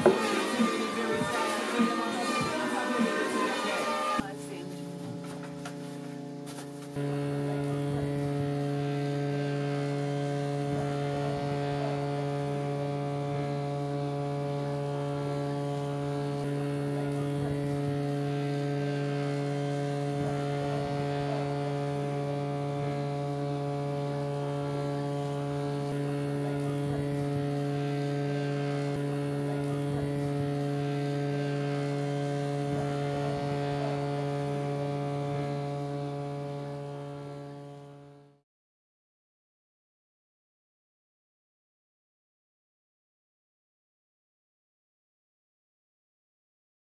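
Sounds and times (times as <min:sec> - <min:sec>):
steady low hum: 0:00.0 - 0:38.4.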